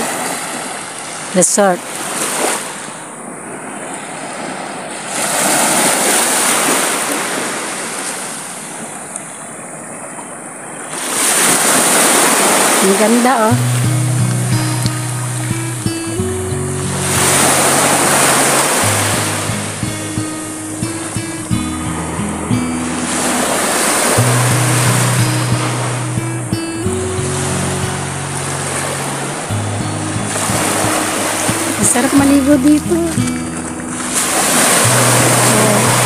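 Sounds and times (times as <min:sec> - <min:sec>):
small waves breaking on shore: 0:00.0 - 0:36.0
music with low sustained chords: 0:13.5 - 0:36.0.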